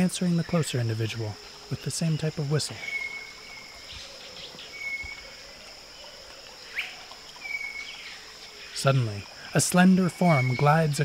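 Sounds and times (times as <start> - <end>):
high insect drone: 0.0 - 11.0
birds whistling: 2.7 - 5.3.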